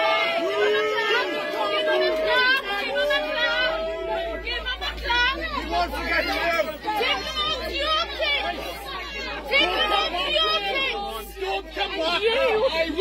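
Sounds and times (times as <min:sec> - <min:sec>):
people talking at once: 0:00.0 - 0:13.0.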